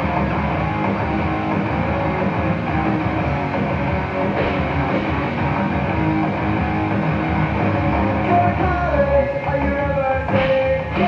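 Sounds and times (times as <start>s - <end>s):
rock music with electric guitar: 0.0s - 11.0s.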